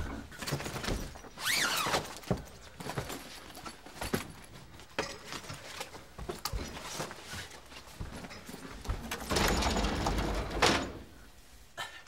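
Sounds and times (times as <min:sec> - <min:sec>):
clothes rustling: 0:00.0 - 0:09.8
hangers knocking: 0:08.3 - 0:11.2.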